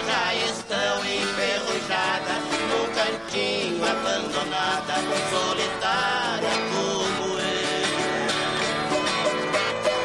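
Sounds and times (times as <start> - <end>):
plucked steel strings: 6.5 - 10.0.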